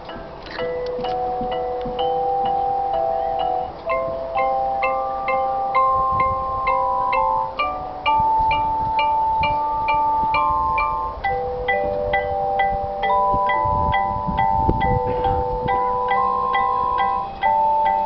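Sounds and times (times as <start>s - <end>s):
long held tones: 0.0s - 18.0s
mallet percussion bell-like notes: 0.0s - 18.0s.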